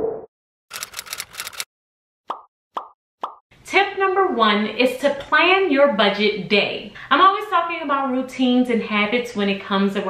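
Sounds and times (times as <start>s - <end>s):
woman speaking: 3.7s - 10.0s.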